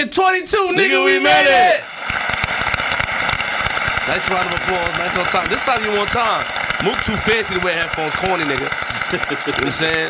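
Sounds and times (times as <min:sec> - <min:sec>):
crowd applause: 0:00.9 - 0:10.0.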